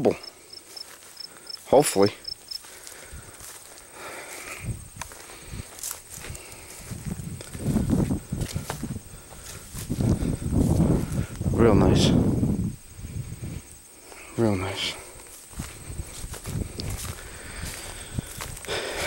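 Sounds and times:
footsteps through leafy plants: 0.6s - 11.4s, 15.0s - 19.0s.

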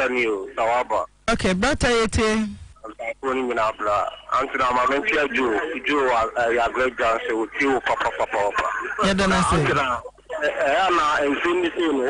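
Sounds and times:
person talking: 1.3s - 3.1s, 9.0s - 10.1s.

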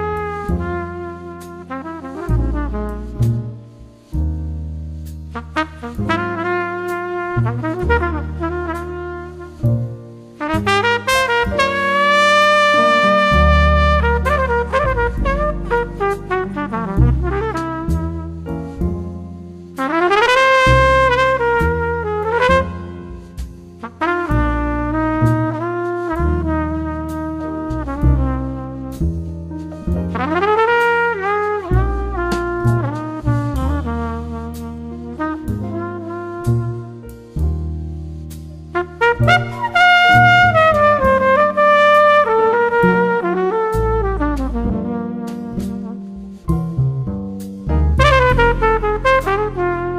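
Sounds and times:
jazz trumpet melody: 0.0s - 49.9s
piano bass and drums: 0.0s - 49.9s.

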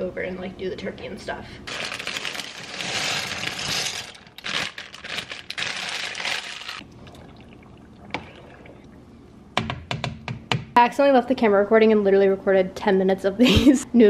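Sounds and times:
dry pasta rattling from plastic bag: 1.7s - 6.8s.

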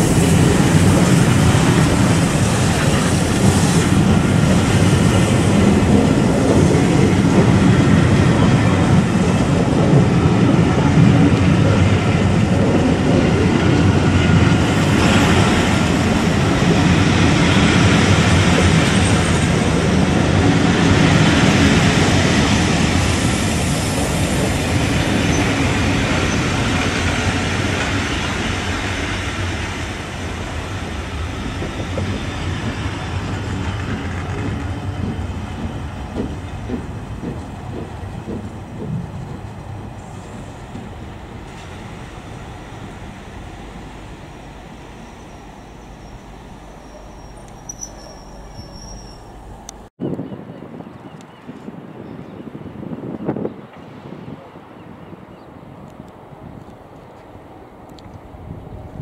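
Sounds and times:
train coaches rolling past: 0.0s - 49.9s
wheels clicking over rail joints: 26.1s - 44.7s.

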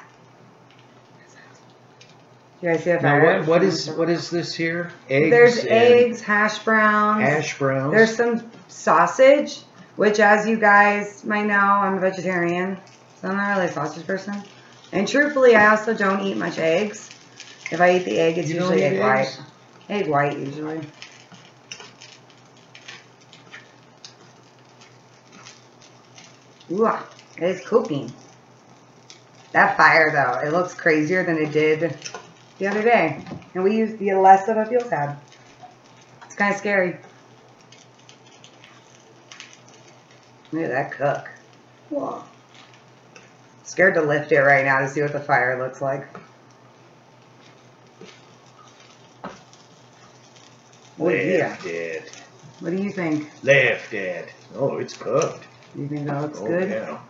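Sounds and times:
food sizzling in a pan: 0.0s - 57.0s.

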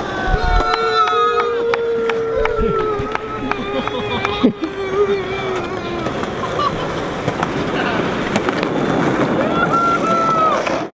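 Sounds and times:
people yelling and cheering: 0.0s - 8.3s, 9.2s - 10.9s
skateboard wheels rolling on concrete: 0.0s - 10.9s.

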